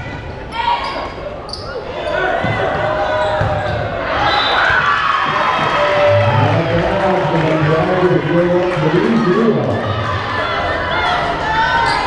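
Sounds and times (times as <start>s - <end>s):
crowd chatter and shouting: 0.0s - 12.0s.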